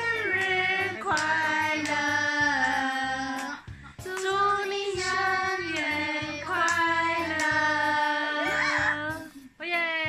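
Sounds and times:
child singing: 0.0 - 9.4.

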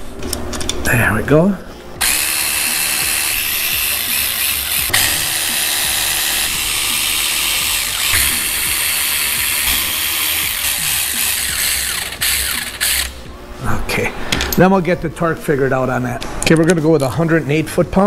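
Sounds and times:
cordless electric ratchet running: 2.0 - 13.2.

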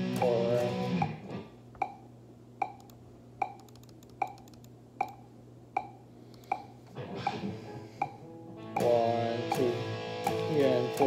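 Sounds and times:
electric guitar playing: 0.0 - 1.5, 6.9 - 11.0
click track ticking: 1.8 - 2.0, 2.6 - 7.4, 8.8 - 11.0.

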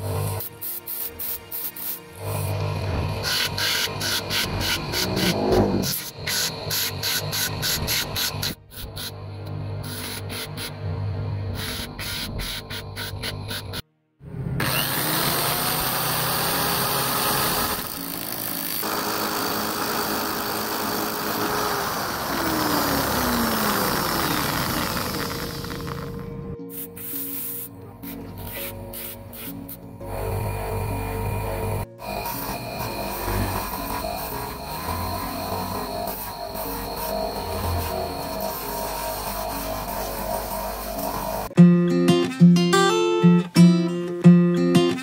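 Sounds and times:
background music: 0.0 - 7.2, 15.6 - 45.0
power tool grinding metal: 0.0 - 13.8, 14.6 - 26.4, 28.4 - 41.6.

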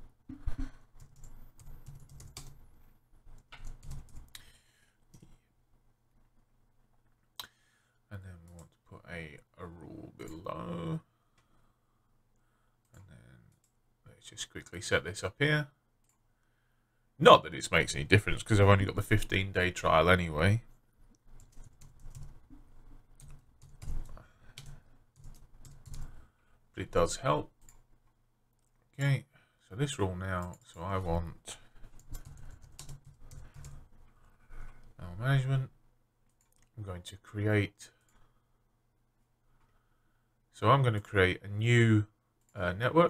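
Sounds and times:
computer keyboard typing: 1.0 - 2.6, 3.4 - 4.3, 21.4 - 22.5, 23.2 - 26.2, 31.8 - 33.9.

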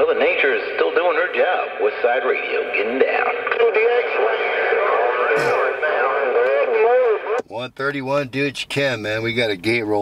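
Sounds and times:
burst of radio noise: 0.0 - 7.4
radio hiss: 0.0 - 7.4
voice over radio speaker: 0.0 - 8.8.

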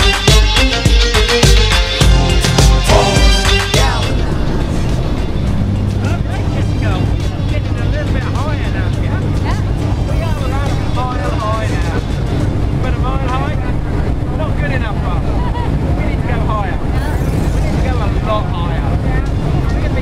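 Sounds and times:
plane engine hum in cabin: 3.9 - 20.0
people talking: 6.0 - 20.0.

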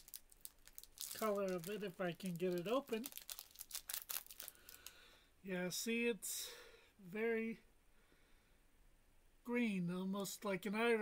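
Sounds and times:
plastic wrapper crinkling: 0.0 - 5.0.

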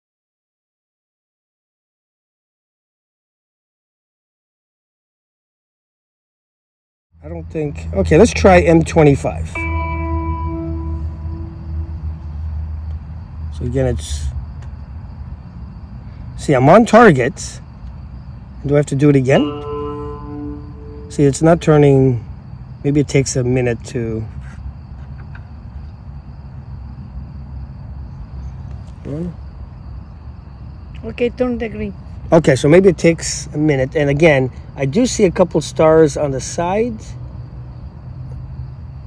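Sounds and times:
crickets chirring: 7.2 - 39.0
bell-like chime tone: 9.5 - 12.1, 19.3 - 21.6.

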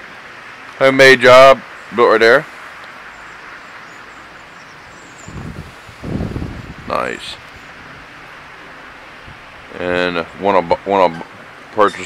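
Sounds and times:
breeze rushing hiss: 0.0 - 12.0
wind gusts buffeting microphone: 4.7 - 12.0.

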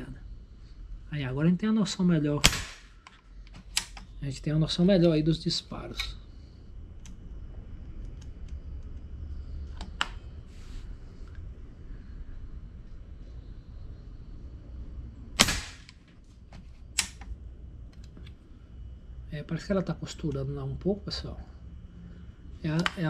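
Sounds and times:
air rifle shot: 2.4 - 3.0, 15.4 - 15.9
sharp clicks: 2.5 - 4.1, 17.0 - 17.3.

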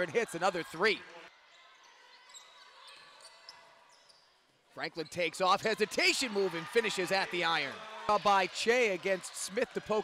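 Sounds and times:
faint basketball game sound: 0.0 - 10.0
shoe squeaks on basketball court: 1.9 - 5.3.

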